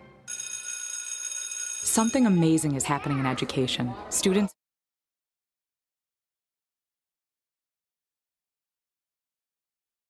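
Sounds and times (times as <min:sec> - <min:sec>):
high ringing tones: 0:00.3 - 0:02.6.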